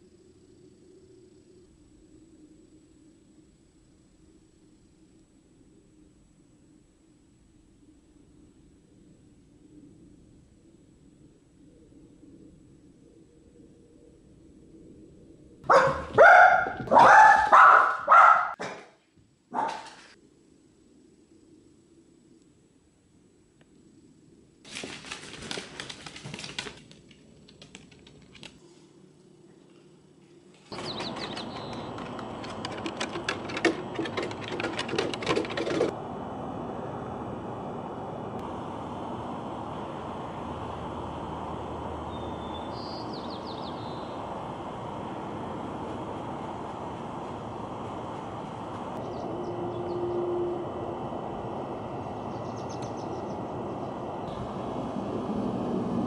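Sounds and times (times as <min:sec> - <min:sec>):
outdoor background noise: 0:00.0 - 0:56.0
dog claws clicking on hardwood floor: 0:24.7 - 0:28.6, 0:30.8 - 0:35.9
bird chirp: 0:30.7 - 0:32.3, 0:42.1 - 0:44.2, 0:49.0 - 0:50.3, 0:52.1 - 0:53.5.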